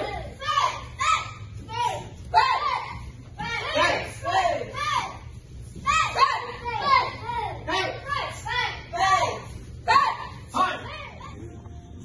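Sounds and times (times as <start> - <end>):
children shouting: 0.0 - 11.3.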